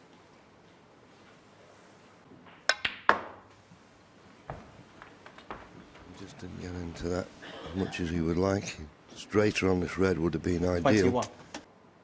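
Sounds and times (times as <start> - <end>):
snooker balls colliding: 2.3 - 3.5
cue tip striking ball: 2.5 - 3.4.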